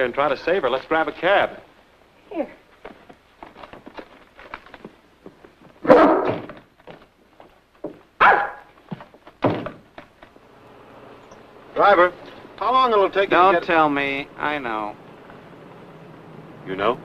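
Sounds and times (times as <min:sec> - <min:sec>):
dog barking: 0:05.8 - 0:06.5, 0:08.2 - 0:08.8.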